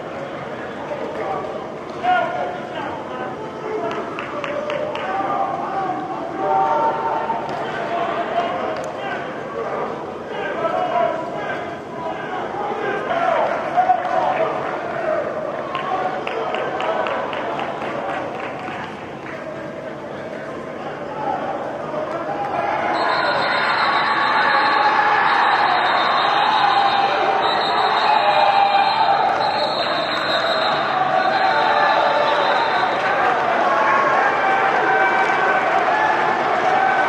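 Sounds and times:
hand claps: 3.9 - 5.2, 15.7 - 19.4.

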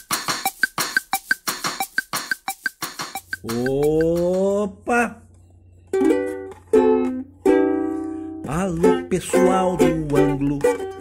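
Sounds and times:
plucked string chords: 3.2 - 11.0.

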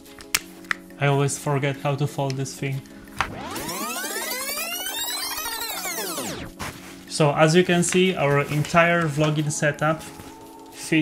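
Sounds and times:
rising and falling synth sweep: 3.2 - 6.6.

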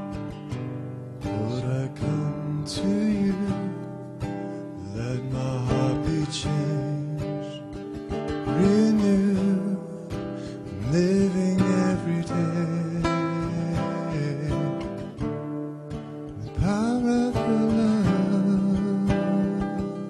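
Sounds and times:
picked acoustic guitar: 0.0 - 20.0.

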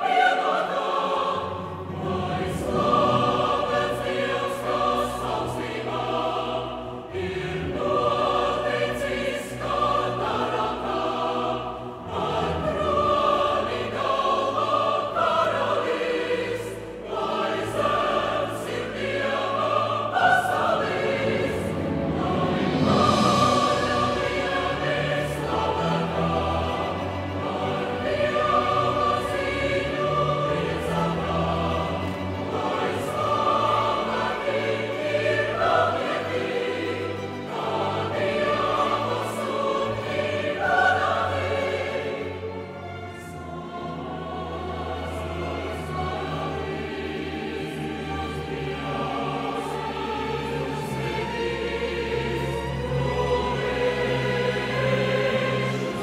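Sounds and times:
choir singing held chords: 0.0 - 56.0
string orchestra: 0.0 - 56.0.

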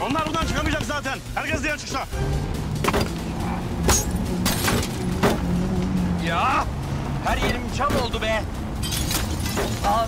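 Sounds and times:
car running: 0.0 - 10.0
soundtrack music: 0.0 - 10.0.

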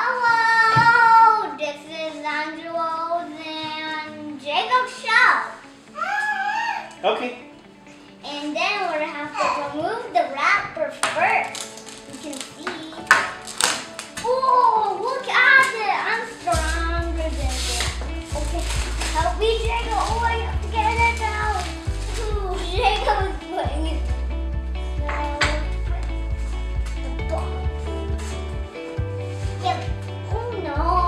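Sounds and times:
background music with bass line: 16.5 - 31.0.

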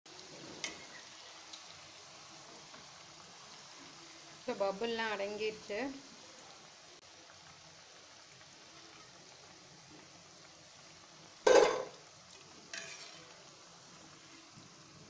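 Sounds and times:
food deep-frying in hot oil: 0.1 - 15.0
metal spoon clattering against pan: 11.5 - 11.9, 12.7 - 13.2.

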